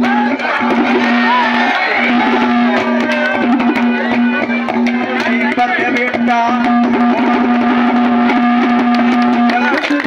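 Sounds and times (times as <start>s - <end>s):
folk music over loudspeakers: 0.0s - 10.0s
steady drone: 0.5s - 5.0s.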